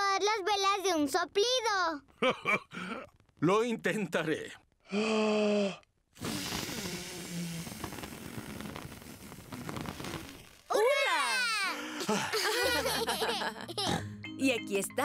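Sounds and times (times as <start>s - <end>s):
long breathy blow: 4.9s - 10.5s
vocal intake of breath: 4.9s - 10.5s
music: 12.6s - 15.0s.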